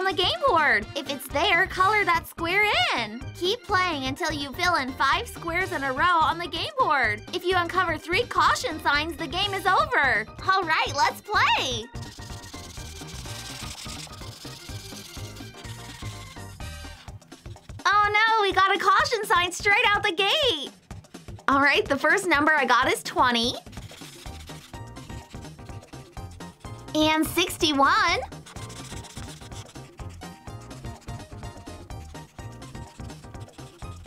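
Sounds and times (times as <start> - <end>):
background music with steady beat: 0.0 - 34.0
marker scratching on paper: 12.0 - 17.9, 23.4 - 34.0.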